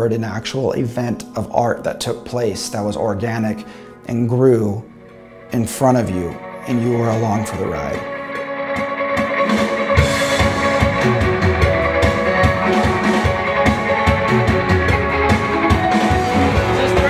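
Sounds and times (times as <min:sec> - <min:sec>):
electric guitar chords: 0:04.7 - 0:17.0
drum kit beat: 0:08.6 - 0:17.0.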